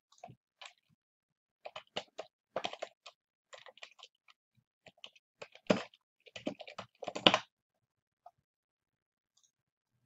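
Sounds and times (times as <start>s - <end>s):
computer keyboard typing: 4.9s - 7.4s.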